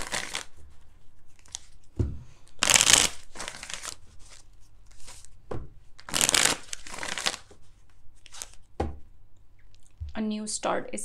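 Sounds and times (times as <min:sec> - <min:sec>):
cards shuffled by hand: 0:00.0 - 0:09.0
thump: 0:02.0 - 0:02.3.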